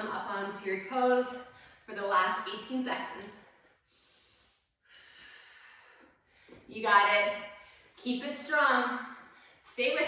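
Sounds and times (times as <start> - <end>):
woman breathing: 1.4 - 1.9, 3.4 - 6.7, 7.4 - 8.0, 9.0 - 9.7.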